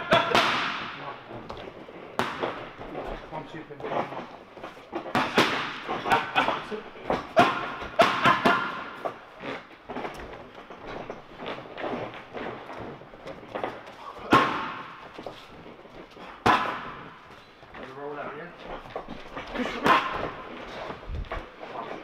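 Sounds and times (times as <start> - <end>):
boxing gloves hitting mitts: 0.0 - 17.8.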